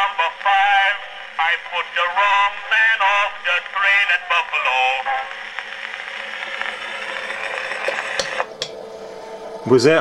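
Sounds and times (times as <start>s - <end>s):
phonograph motor whirring: 0.0s - 10.0s
stylus hiss on wax cylinder: 2.4s - 9.1s.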